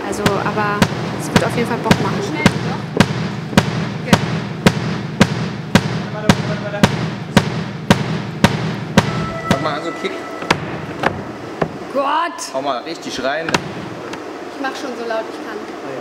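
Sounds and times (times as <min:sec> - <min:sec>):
drum beat: 0:00.0 - 0:11.9
low hum: 0:09.0 - 0:12.0.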